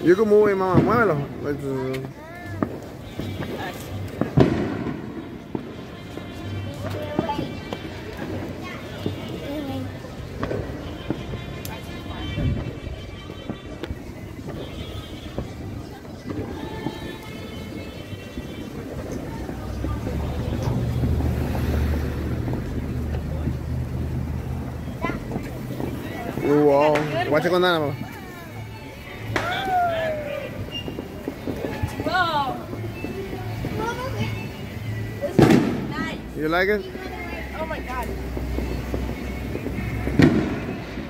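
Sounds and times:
fireworks and firecrackers banging: 0.0s - 41.0s
music: 0.0s - 41.0s
voices: 0.0s - 41.0s.

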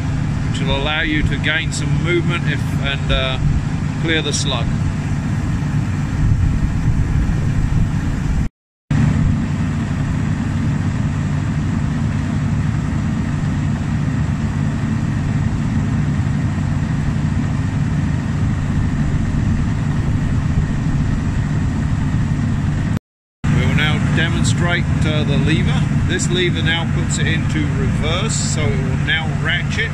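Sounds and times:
engine running steadily: 0.0s - 29.9s.

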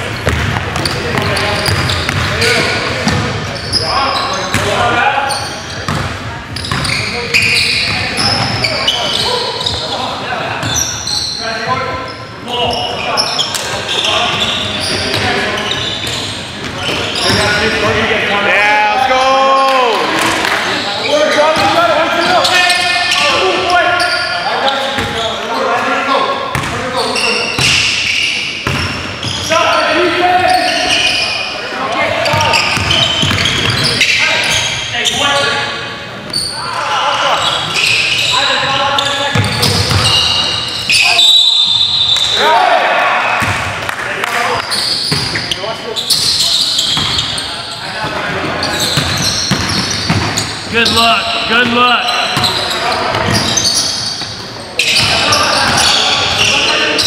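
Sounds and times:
echoing voices: 0.0s - 57.0s.

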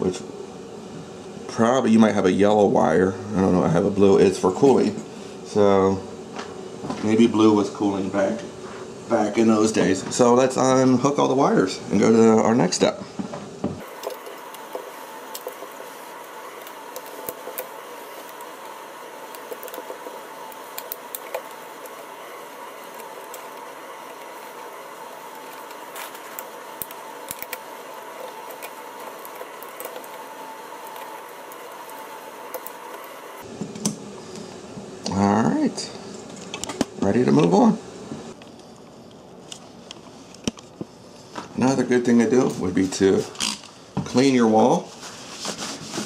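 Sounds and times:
steady hiss: 13.8s - 36.2s.

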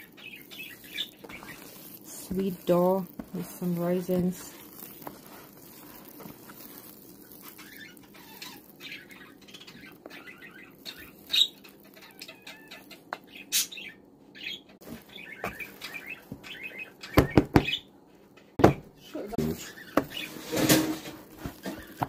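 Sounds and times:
hands kneading sticky dough: 0.0s - 13.2s, 14.8s - 17.7s, 19.4s - 22.0s
dough slapping: 0.6s - 8.1s.

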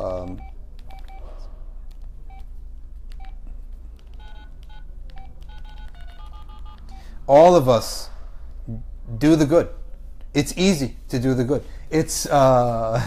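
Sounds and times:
touch-tone keypad beeps: 0.4s - 1.2s, 2.3s - 2.5s, 3.2s - 3.4s, 4.1s - 7.2s.

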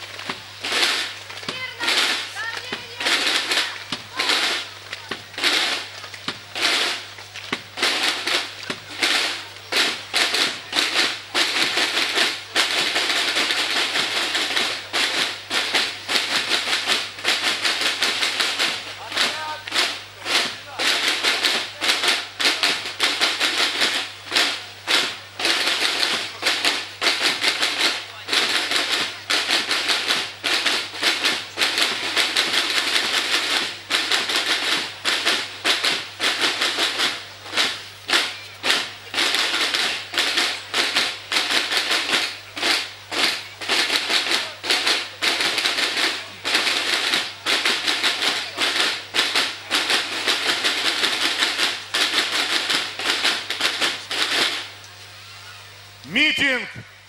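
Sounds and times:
snare drums marching rhythm: 0.0s - 54.9s, 55.9s - 57.0s.

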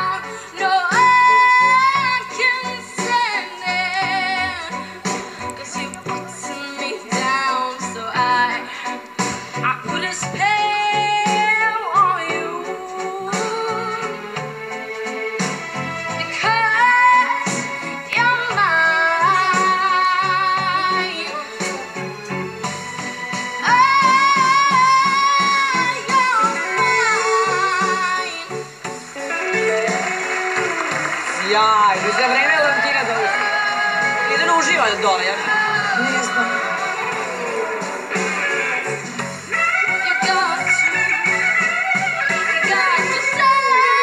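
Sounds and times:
woman singing: 0.0s - 9.0s, 9.6s - 14.4s, 16.2s - 22.0s, 23.6s - 28.7s, 29.3s - 30.3s, 31.4s - 38.6s, 39.5s - 44.0s
guitar pop backing with beat: 0.0s - 44.0s
instrumental accompaniment: 0.0s - 44.0s
hissing noise: 26.4s - 42.7s.

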